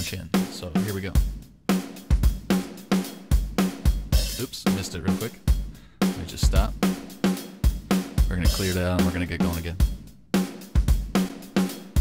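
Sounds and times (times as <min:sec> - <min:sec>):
programmed drum groove: 0:00.0 - 0:12.0.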